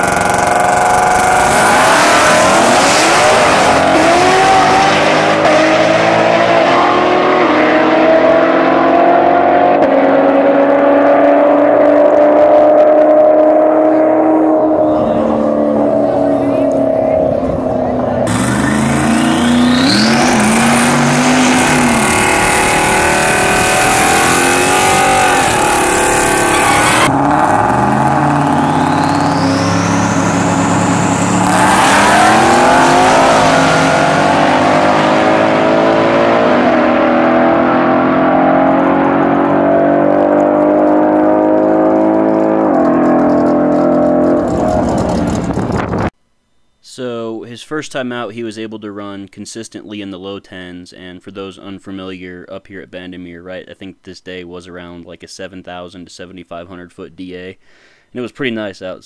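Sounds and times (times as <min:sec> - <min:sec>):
car engine running hard: 0:00.0 - 0:46.1
supercharger whine: 0:00.0 - 0:46.1.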